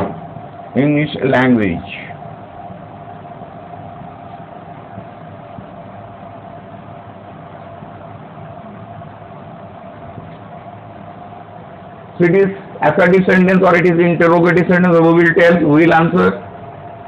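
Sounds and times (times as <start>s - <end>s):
faint constant whine: 0.0s - 17.0s
room hum and hiss: 0.0s - 17.0s.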